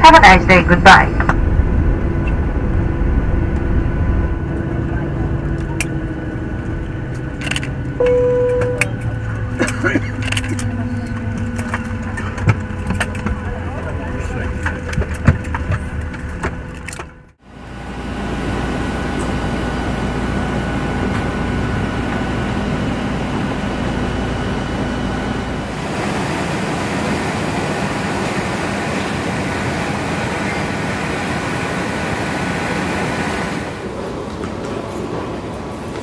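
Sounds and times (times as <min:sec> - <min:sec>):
deep rumble: 0:00.0 - 0:25.8
jet engine drone with high whine: 0:00.0 - 0:36.0.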